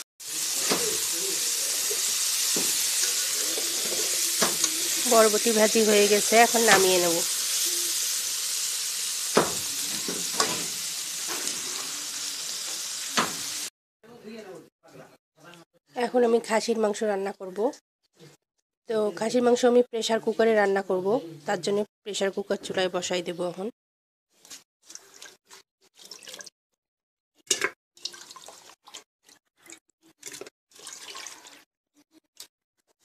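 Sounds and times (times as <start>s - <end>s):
vegetables sizzling in oil: 0.2s - 13.7s
water dripping and splashing: 1.9s - 7.3s, 24.4s - 26.5s, 27.5s - 31.6s.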